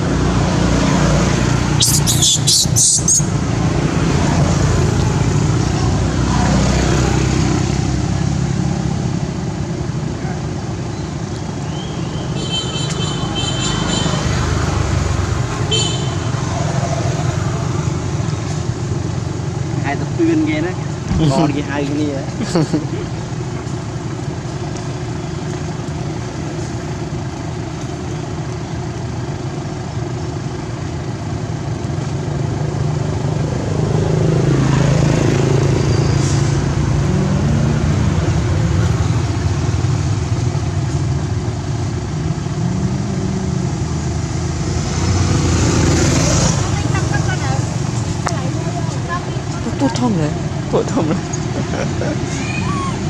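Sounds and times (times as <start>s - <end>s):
vehicle engine running: 0.0s - 53.0s.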